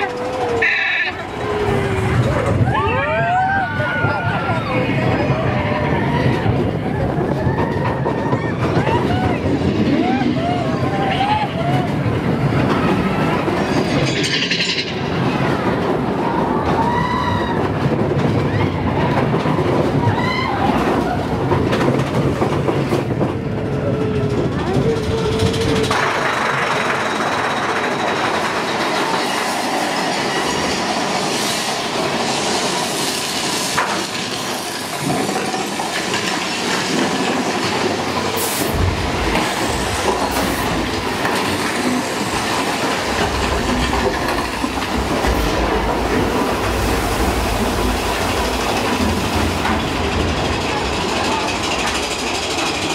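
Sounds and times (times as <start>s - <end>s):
deeper rumble: 0.0s - 13.9s, 37.2s - 52.9s
roller coaster wheels rattling on rails: 0.0s - 52.9s.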